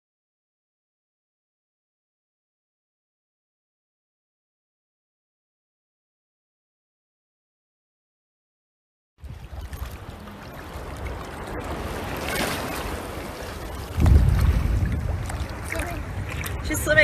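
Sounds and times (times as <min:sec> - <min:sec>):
water splashing around swimmer: 0:09.2 - 0:17.0
wind buffeting microphone: 0:09.2 - 0:17.0.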